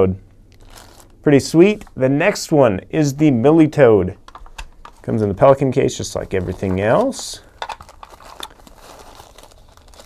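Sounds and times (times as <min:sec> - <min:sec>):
plastic and foam wrap crinkling: 0:00.6 - 0:01.9, 0:06.0 - 0:10.0.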